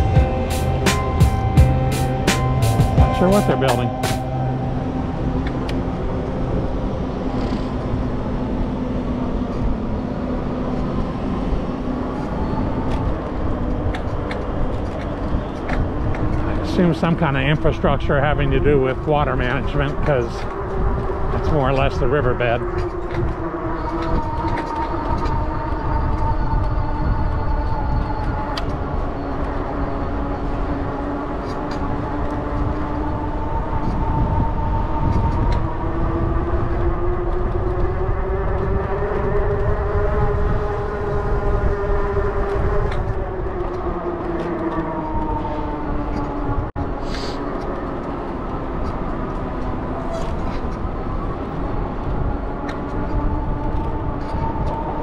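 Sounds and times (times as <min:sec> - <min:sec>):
wind rumble on microphone: 0:00.0 - 0:55.0
electric bike motor whining: 0:19.6 - 0:46.6.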